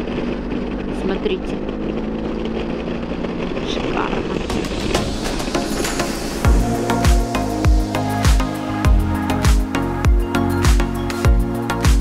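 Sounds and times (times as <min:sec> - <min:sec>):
motorcycle engine running: 0:00.0 - 0:12.0
music: 0:04.2 - 0:12.0.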